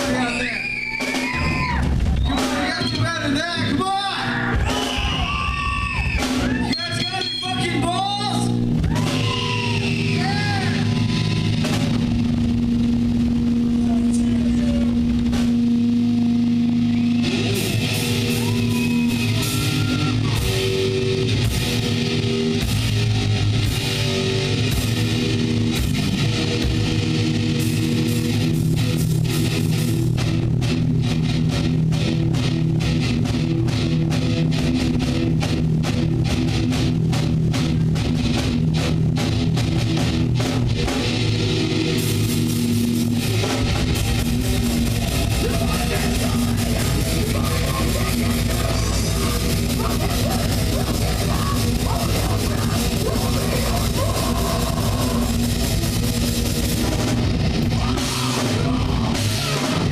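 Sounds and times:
fast dense drumming: 0:00.0 - 0:59.9
electric guitars sustained note: 0:06.7 - 0:59.9.

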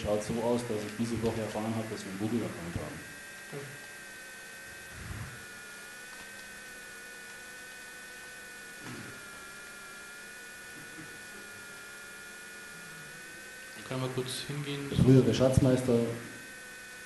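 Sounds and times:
electrical mains hum: 0:00.0 - 0:17.0
high-pitched whine: 0:04.7 - 0:05.7.

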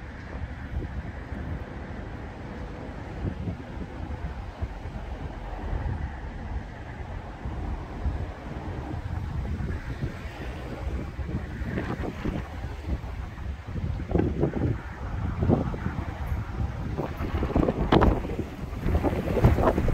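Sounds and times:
wind buffeting microphone: 0:00.0 - 0:19.9.

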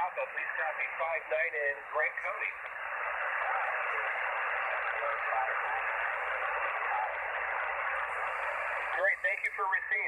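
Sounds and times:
radio static hiss: 0:00.0 - 0:10.0
faint voice on radio: 0:03.3 - 0:07.4.

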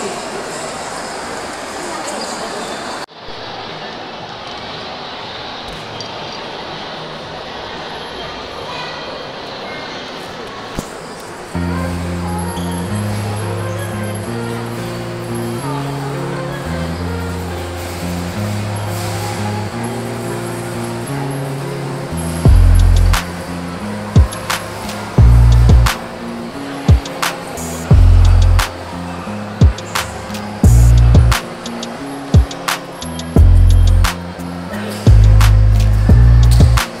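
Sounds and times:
electronic pop music: 0:11.6 - 0:37.0
heavy bass hits: 0:22.5 - 0:23.2, 0:25.2 - 0:26.0, 0:27.9 - 0:28.7, 0:30.6 - 0:31.4, 0:33.4 - 0:34.2, 0:35.1 - 0:36.8
sharp regular beat: 0:22.5 - 0:23.4, 0:24.2 - 0:26.0, 0:26.9 - 0:28.7, 0:29.6 - 0:34.2, 0:35.1 - 0:36.9.

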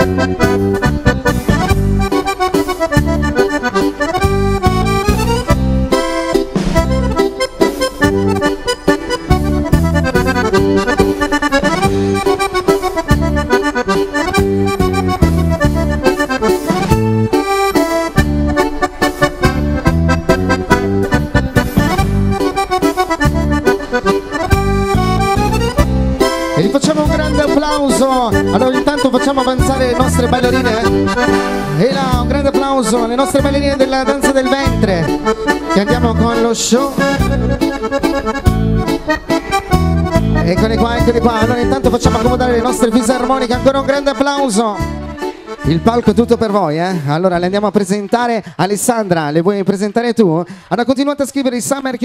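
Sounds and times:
pulsing bass: 0:00.0 - 0:02.2, 0:02.9 - 0:06.0, 0:06.6 - 0:07.3, 0:09.2 - 0:12.5, 0:13.1 - 0:22.6, 0:23.2 - 0:34.0, 0:34.6 - 0:36.4, 0:37.0 - 0:37.7, 0:38.3 - 0:44.0
accordions playing lively tune: 0:00.0 - 0:52.0
steady drum beat: 0:04.1 - 0:13.6.

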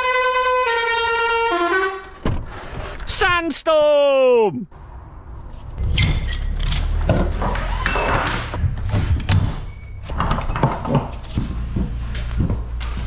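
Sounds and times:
steady low rumble: 0:04.7 - 0:07.6.

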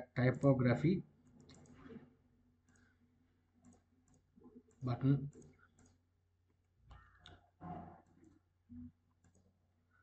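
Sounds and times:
computer mouse clicks: 0:01.2 - 0:09.7.

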